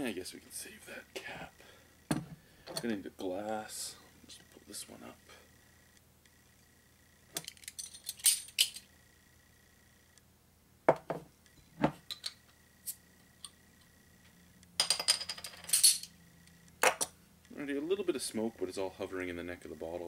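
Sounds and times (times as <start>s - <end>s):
glass knocking on counter: 10.9s - 12.0s.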